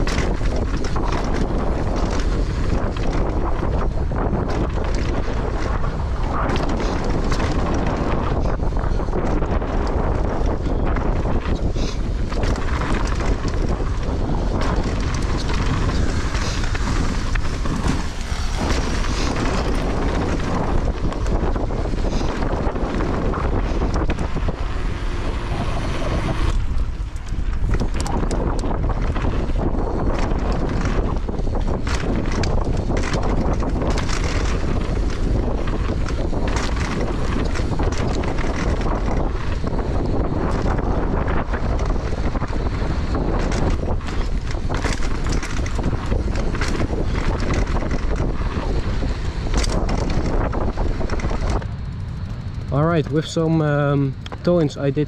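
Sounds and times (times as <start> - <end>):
bike clicks and rattles: 0.0 - 55.0
tyre rumble: 0.0 - 55.0
wind on microphone: 0.0 - 55.0.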